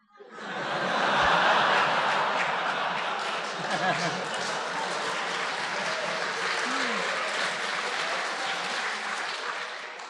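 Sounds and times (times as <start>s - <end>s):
audience applauding: 0.4s - 10.0s.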